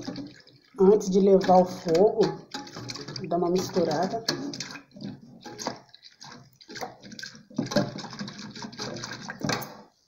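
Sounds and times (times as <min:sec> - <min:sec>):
whisk clicking on metal pot: 0:00.0 - 0:09.8
whisk sloshing milk: 0:00.0 - 0:09.9.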